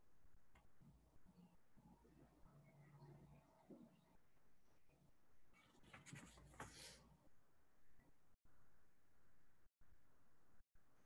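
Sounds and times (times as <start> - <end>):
faint rustling or scratching: 5.5 - 7.1.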